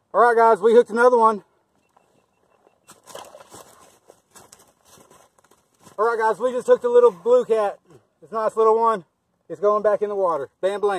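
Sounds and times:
clothing rustling on microphone: 1.9s - 6.0s.

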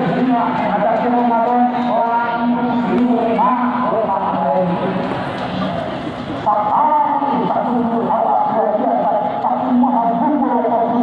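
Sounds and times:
man chanting over loudspeaker: 0.0s - 11.0s.

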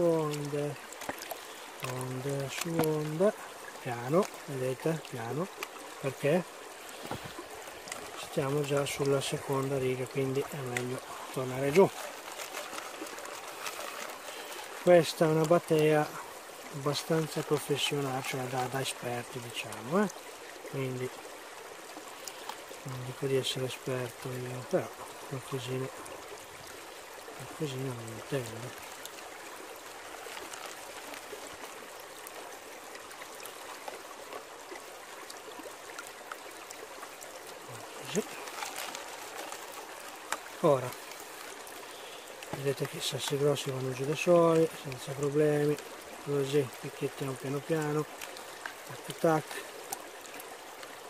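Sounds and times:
river water sloshing around pan: 0.0s - 51.0s
stream flowing: 0.0s - 51.0s
gravel clicking in pan: 0.2s - 16.1s.

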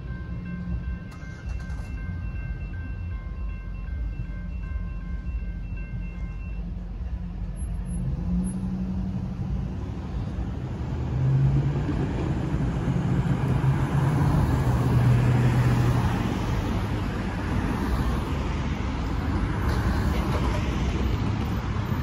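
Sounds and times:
railroad crossing bell ringing: 0.0s - 10.4s
vehicle engines pulling away: 7.6s - 17.8s.

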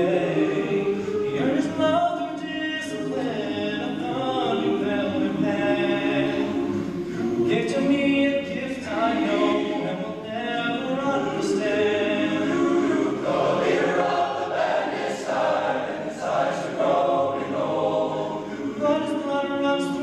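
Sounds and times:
men's choir singing a cappella: 0.0s - 20.0s.

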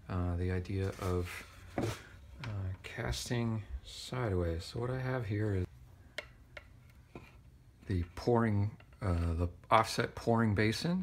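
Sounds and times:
man speaking: 0.0s - 5.7s, 7.8s - 11.0s.

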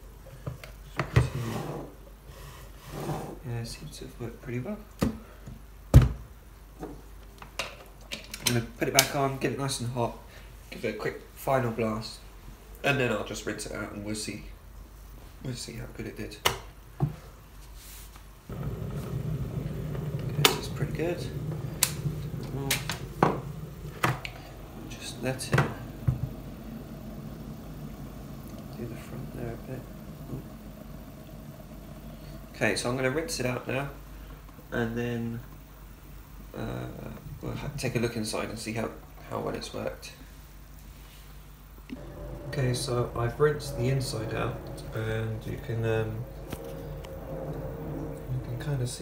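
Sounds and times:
electric kettle heating rumble: 18.5s - 39.9s, 41.8s - 49.0s.

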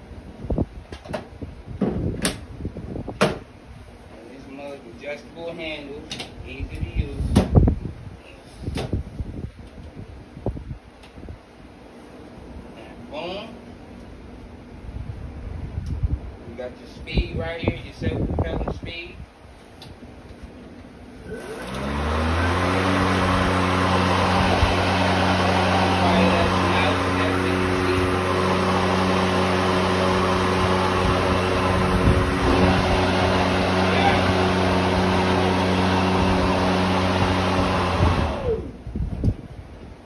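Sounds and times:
lawn mower motor whining: 21.1s - 38.8s.

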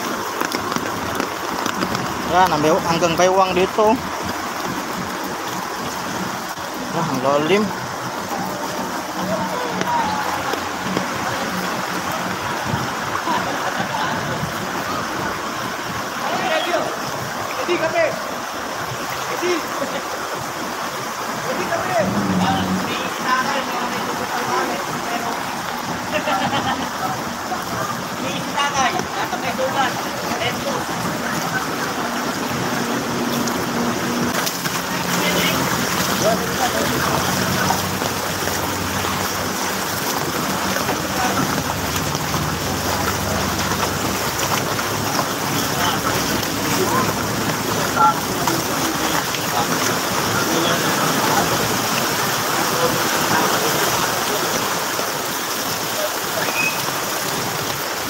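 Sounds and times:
floodwater splashing: 0.0s - 58.0s
background voices: 21.0s - 56.8s.

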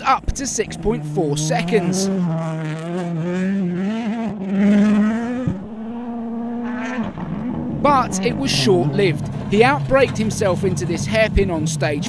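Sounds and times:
rally car engine running hard: 0.0s - 12.0s.

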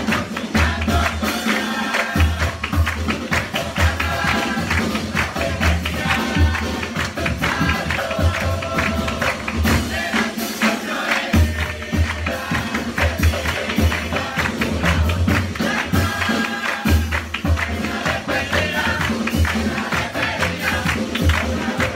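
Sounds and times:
bass drum and cymbals beat: 0.0s - 21.9s
group of young voices singing: 0.0s - 21.9s.

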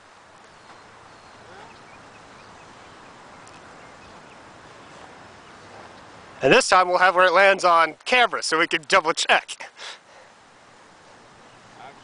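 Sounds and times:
faint steady hiss: 0.0s - 12.0s
bird chirps: 0.4s - 6.2s.

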